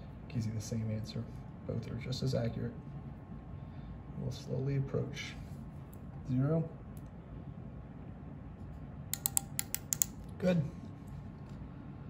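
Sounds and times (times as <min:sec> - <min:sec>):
micrometer ratchet clicking: 0:09.1 - 0:10.2.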